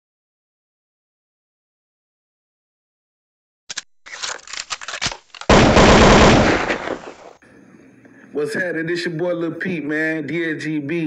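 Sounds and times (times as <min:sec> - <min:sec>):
automatic gunfire: 0:05.5 - 0:07.2.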